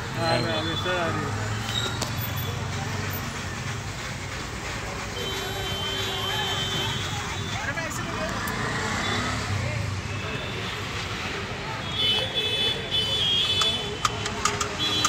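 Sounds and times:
crowd chatter: 0.0s - 15.0s
traffic noise: 0.0s - 15.0s.

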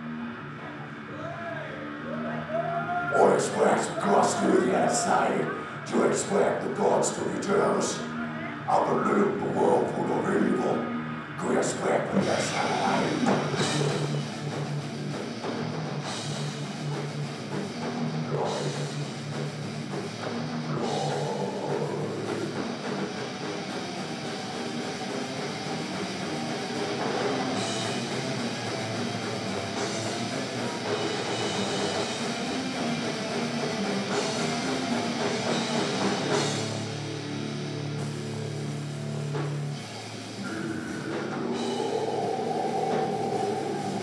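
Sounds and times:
distorted electric guitars droning: 0.0s - 44.0s
heavy metal band playing: 0.0s - 44.0s.

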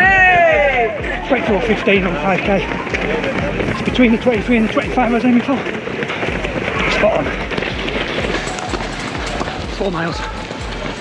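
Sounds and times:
murmur of voices: 0.0s - 11.0s
runners' footsteps on road: 0.0s - 11.0s.

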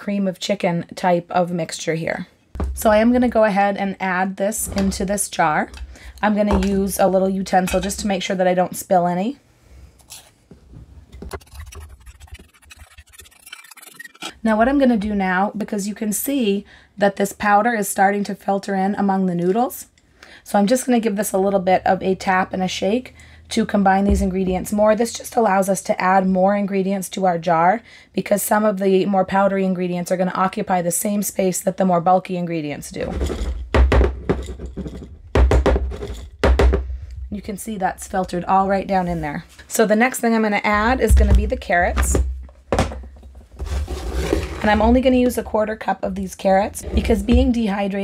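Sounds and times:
spoon scraping metal bowl: 7.6s - 8.0s, 11.2s - 14.4s, 32.9s - 33.6s, 43.6s - 45.4s, 46.3s - 47.6s
glass jar knocking on counter: 33.2s - 36.9s.

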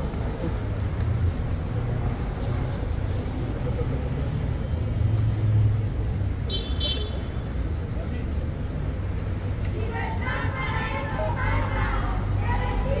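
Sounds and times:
city street traffic rumble: 0.0s - 13.0s
indistinct voices: 7.9s - 13.0s.

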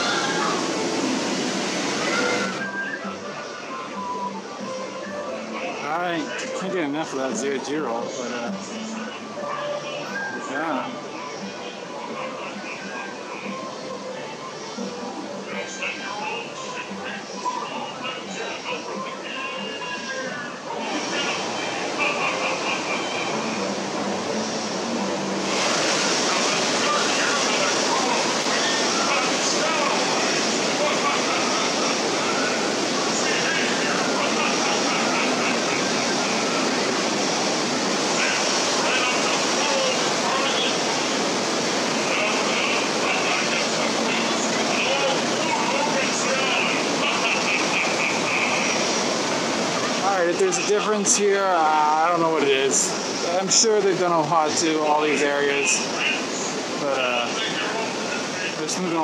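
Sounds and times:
distant people talking: 0.0s - 59.0s
rushing outdoor background noise: 0.0s - 59.0s.

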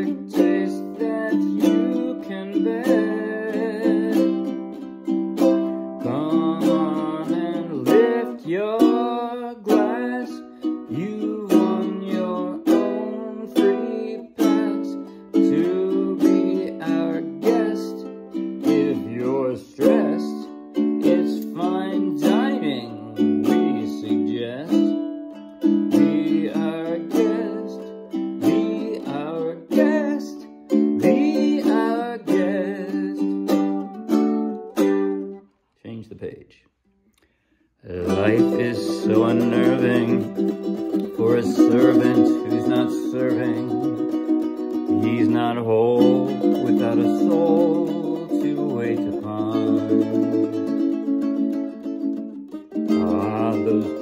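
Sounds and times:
ukulele strumming chords: 0.0s - 35.6s, 37.9s - 54.0s.

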